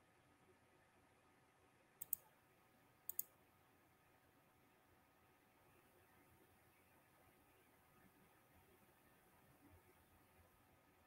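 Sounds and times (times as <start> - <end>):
computer mouse double clicks: 2.0 - 2.2, 3.1 - 3.3.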